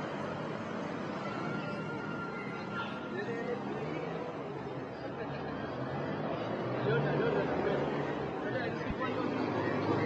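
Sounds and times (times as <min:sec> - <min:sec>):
outdoor background noise: 0:00.0 - 0:10.0
people chattering: 0:00.0 - 0:10.0.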